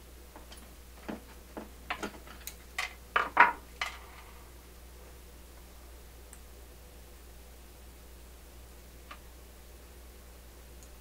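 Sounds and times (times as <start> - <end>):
low steady hum: 0.0 - 11.0
clicks and knocks on wood: 0.3 - 4.0.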